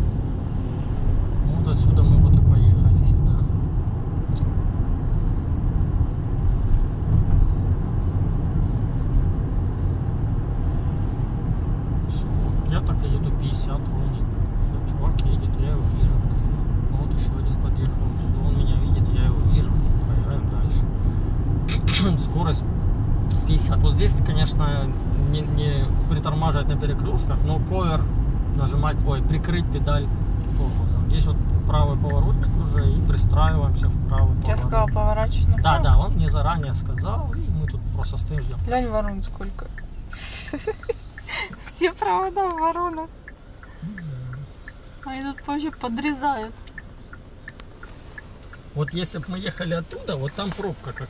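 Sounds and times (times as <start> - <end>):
car interior road rumble: 0.0 - 51.0.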